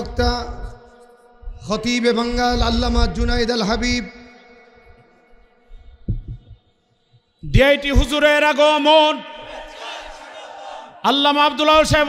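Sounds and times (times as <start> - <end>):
microphone handling thumps: 2.3 - 4.0, 5.8 - 6.6.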